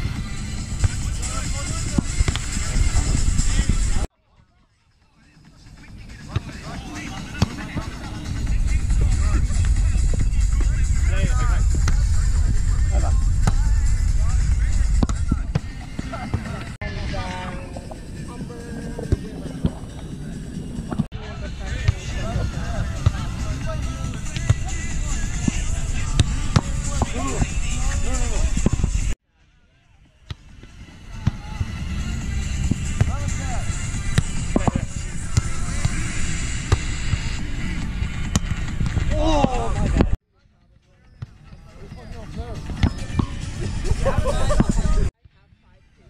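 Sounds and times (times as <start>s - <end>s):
background music: 0.0s - 45.1s
background voices: 5.4s - 29.2s
low rumble: 8.1s - 29.2s.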